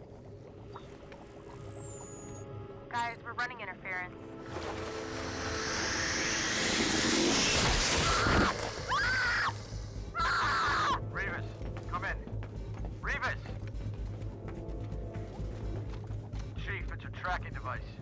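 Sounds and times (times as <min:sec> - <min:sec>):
low steady drone: 0:03.9 - 0:10.4
rush of noise: 0:04.4 - 0:10.2
creature calls: 0:07.0 - 0:10.9.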